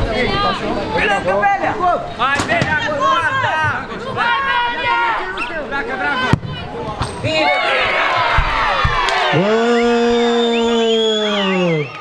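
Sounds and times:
young voices shouting: 0.1 - 12.0.

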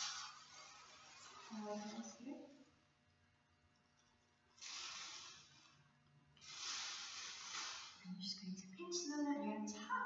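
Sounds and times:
plastic bag rustling: 4.5 - 8.2.

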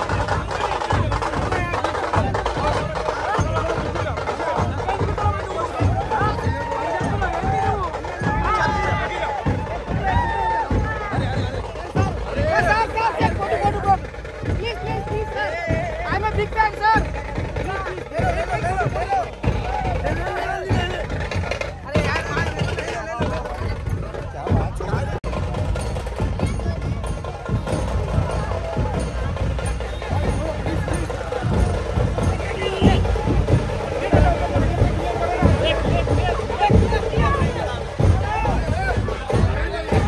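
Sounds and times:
background music with drum beat: 0.0 - 40.0
crowd shouting and chattering: 0.0 - 40.0.

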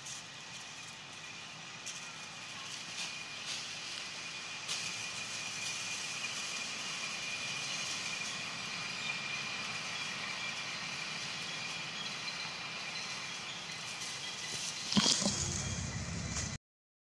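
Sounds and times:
forest ambience hiss: 0.0 - 16.6.

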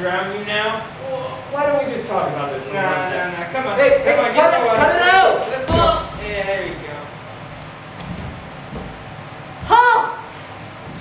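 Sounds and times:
low hall rumble: 0.0 - 11.0.

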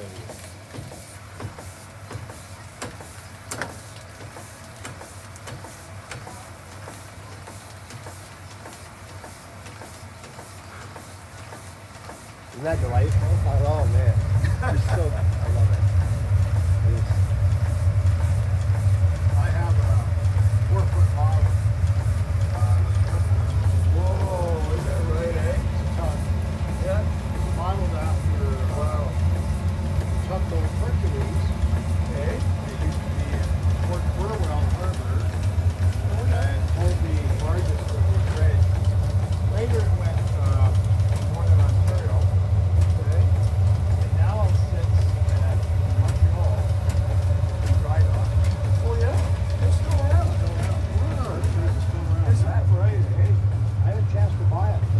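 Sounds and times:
steam engine machinery rumble: 0.0 - 54.9
people talking indistinctly: 12.5 - 54.9.

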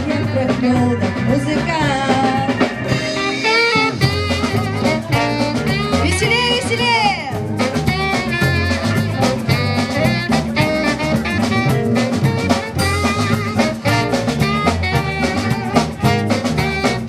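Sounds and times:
brass instruments: 0.0 - 17.0
saxophone: 0.0 - 17.0
steady drum beat: 0.0 - 17.0.

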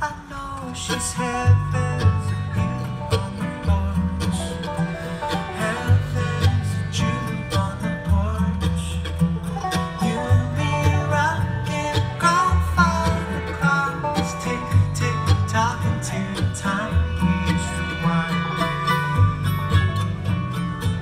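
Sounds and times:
bluegrass string band playing: 0.0 - 21.0
upright bass notes: 0.9 - 21.0.

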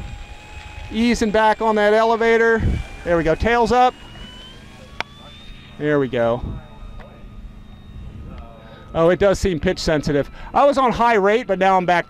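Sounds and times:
low outdoor rumble: 0.0 - 11.5
electric motor and propeller whine: 0.0 - 12.0.

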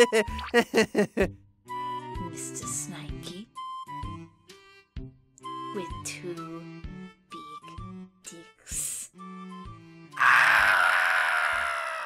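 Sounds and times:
strained vocal scream: 10.2 - 12.0.

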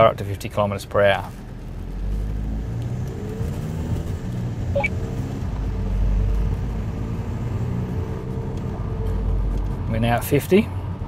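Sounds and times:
car engine and road rumble: 0.0 - 11.0.

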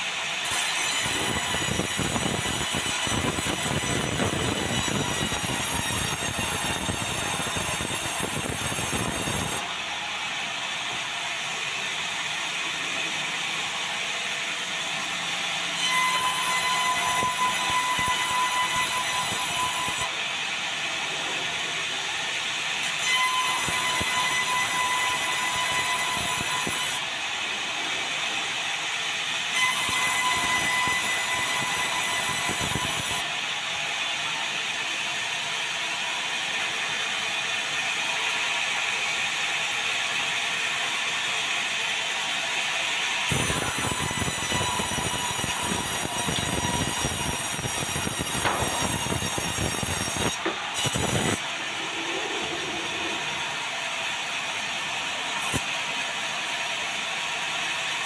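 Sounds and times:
saw whine: 0.2 - 41.6, 42.2 - 58.0
sawmill saw cutting log: 0.4 - 9.6, 11.4 - 33.5, 42.8 - 58.0.

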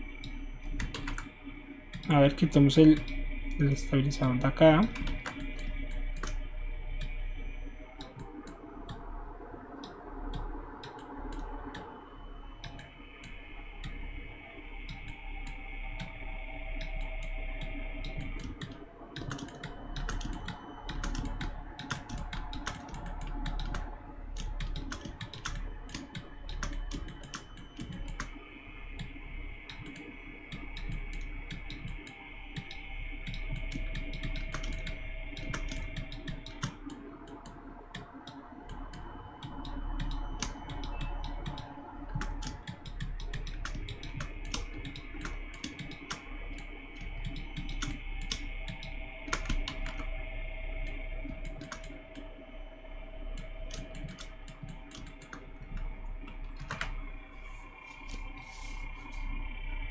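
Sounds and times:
steady low hum: 0.0 - 59.9
keyboard keys clicking: 0.2 - 1.3, 4.8 - 6.4, 16.8 - 28.4, 29.0 - 50.1, 50.8 - 52.2, 53.4 - 57.0.

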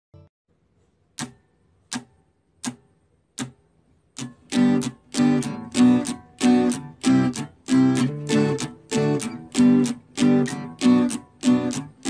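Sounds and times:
sharp percussive count-in clicks: 1.2 - 3.6.

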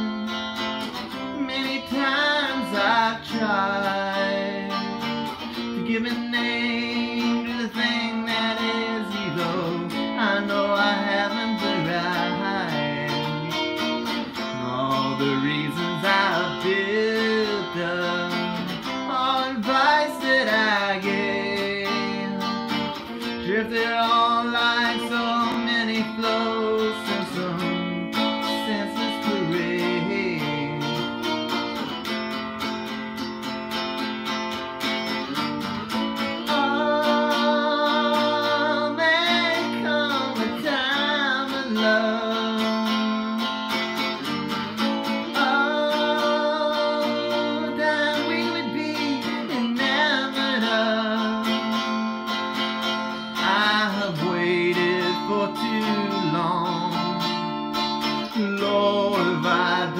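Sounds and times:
man singing: 0.0 - 33.4, 34.2 - 59.9
electric guitar strumming chords: 0.0 - 59.9.

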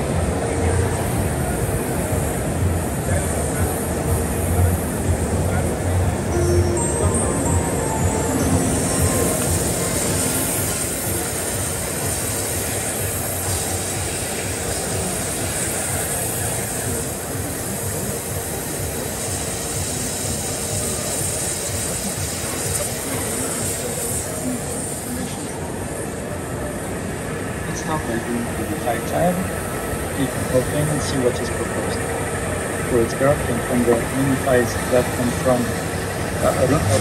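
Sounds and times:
waterjet cutter hissing: 8.4 - 25.4.

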